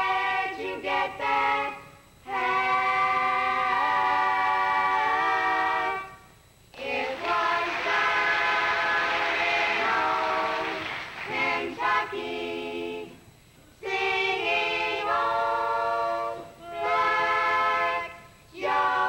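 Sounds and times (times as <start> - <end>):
voices singing barbershop harmony: 0.0 - 19.0.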